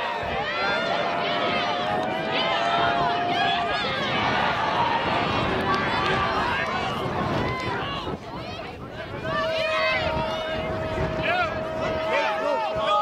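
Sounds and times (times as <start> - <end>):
voices shouting: 0.0 - 13.0.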